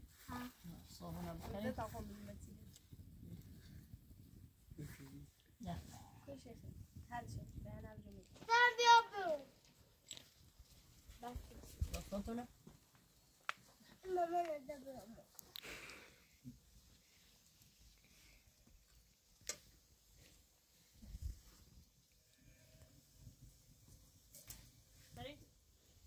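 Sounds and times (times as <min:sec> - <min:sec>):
faint sharp clicks and taps: 0:12.6 - 0:14.6.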